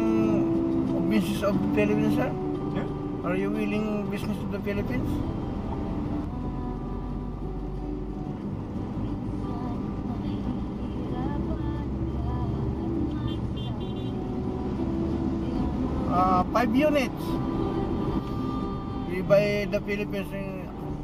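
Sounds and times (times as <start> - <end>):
car engine and road rumble: 0.0 - 21.0
car horn toots: 13.3 - 14.2.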